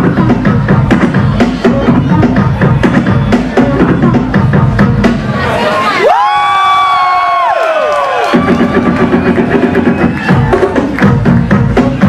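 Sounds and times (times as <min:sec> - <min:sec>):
hip-hop beat: 0:00.0 - 0:05.6, 0:08.2 - 0:12.0.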